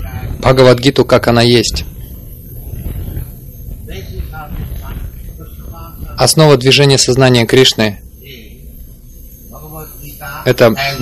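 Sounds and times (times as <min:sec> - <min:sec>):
man speaking over public address: 0:00.0 - 0:02.0, 0:03.9 - 0:08.7, 0:09.6 - 0:11.0
low outdoor rumble: 0:00.0 - 0:11.0.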